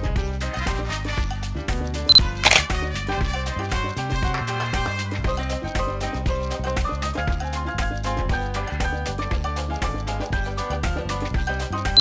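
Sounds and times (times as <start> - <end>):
background music with beat: 0.0 - 12.0
camera shutter click: 2.2 - 2.8.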